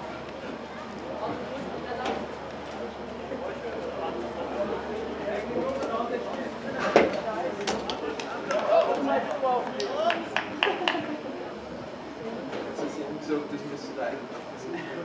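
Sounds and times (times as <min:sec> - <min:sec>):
indistinct chatter of voices: 0:00.0 - 0:15.0.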